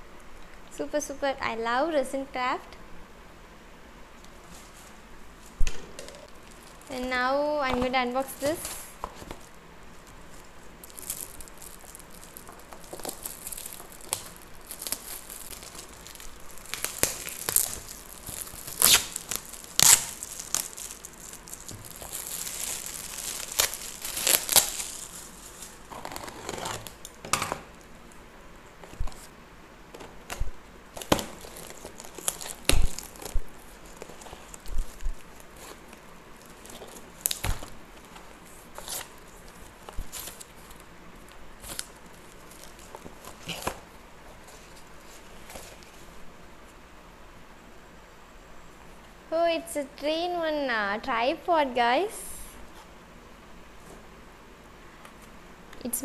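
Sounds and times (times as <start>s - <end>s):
wrapping paper crinkling and tearing: 4.4s - 28.2s, 30.1s - 46.2s.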